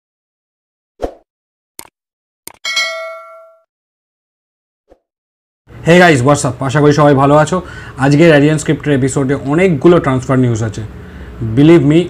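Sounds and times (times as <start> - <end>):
bright bell ding: 2.6 - 3.7.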